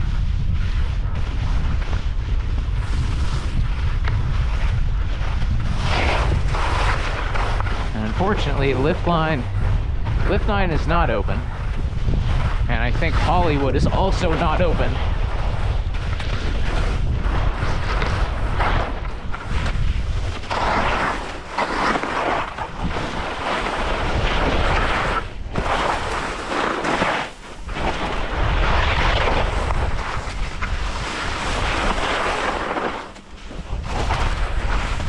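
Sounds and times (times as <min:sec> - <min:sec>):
wind buffeting microphone: 0:00.0 - 0:21.6, 0:22.2 - 0:26.3, 0:27.5 - 0:35.0
skis hissing and scraping on snow: 0:00.1 - 0:35.0.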